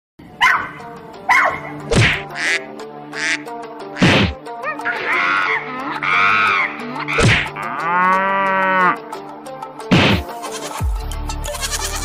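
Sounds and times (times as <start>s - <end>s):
background music: 0.2s - 12.0s
dog barking: 0.4s - 1.8s.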